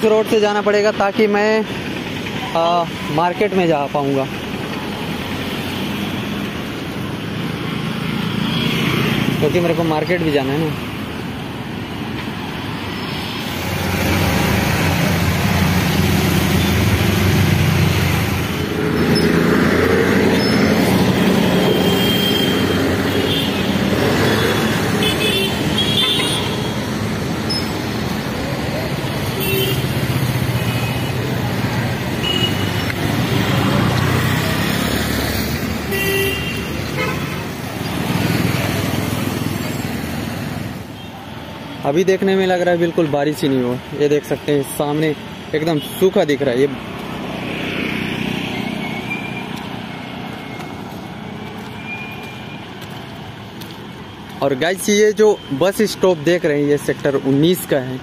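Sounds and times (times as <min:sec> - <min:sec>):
road traffic passing: 0:00.0 - 0:58.0.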